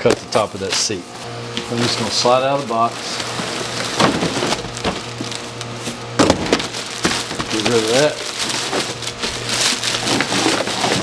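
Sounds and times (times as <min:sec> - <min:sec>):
plastic wrapping crinkling: 0:00.1 - 0:11.0.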